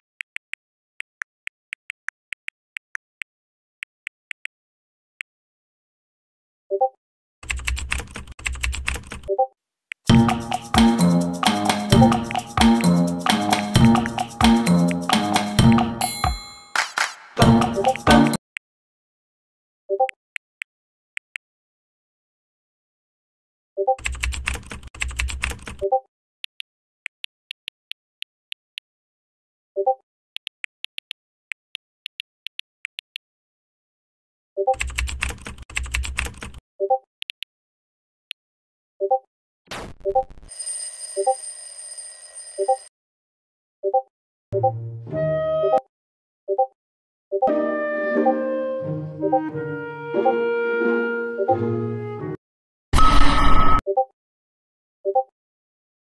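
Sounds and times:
rapid computer keyboard typing: 7.4 - 9.3, 10.1 - 15.8, 24.0 - 25.9, 34.7 - 36.6
short electronic blip: 53.0 - 53.8.

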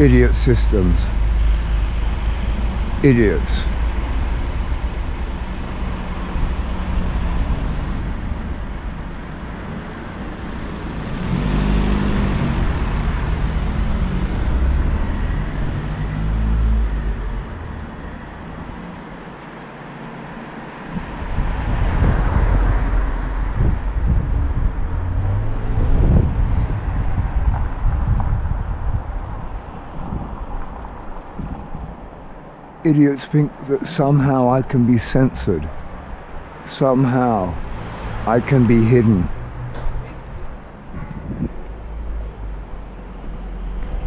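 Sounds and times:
cars passing on road: 0.0 - 44.0.

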